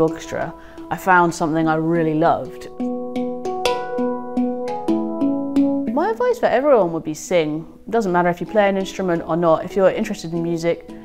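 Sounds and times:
handpan ringing notes: 0.0s - 6.6s.

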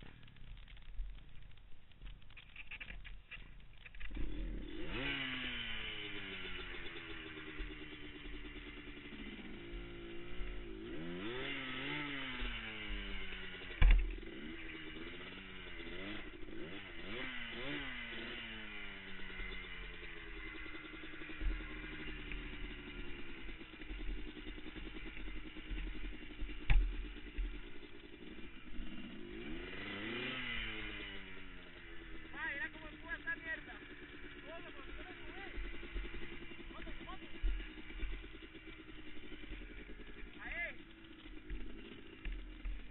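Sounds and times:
atv engine revving: 0.0s - 42.9s.

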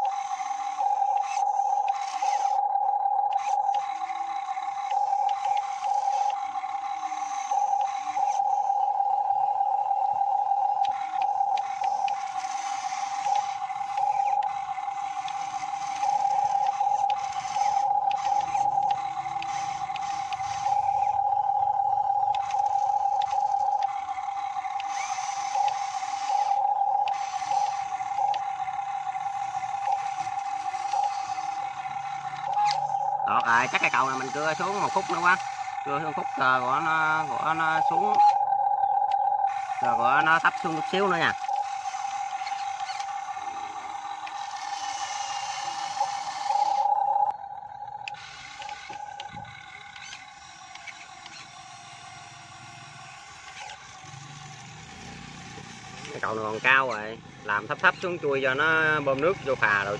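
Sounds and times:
model excavator motor whine: 0.0s - 59.9s.

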